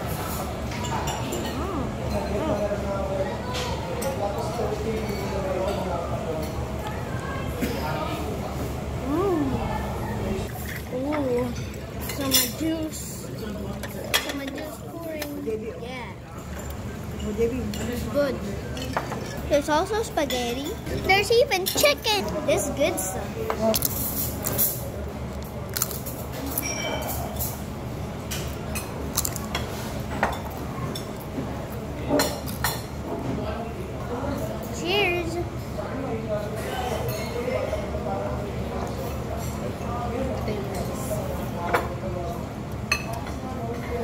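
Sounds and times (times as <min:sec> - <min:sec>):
restaurant background hum: 0:00.0 - 0:44.0
cutlery and plates clinking: 0:16.4 - 0:19.4, 0:25.8 - 0:27.6
glass pitcher clinking on glass: 0:26.6 - 0:27.4.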